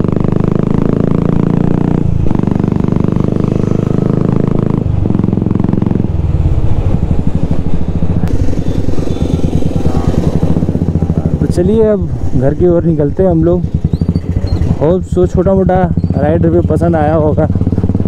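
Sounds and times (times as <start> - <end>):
motorcycle engine while riding: 0.0 - 18.0.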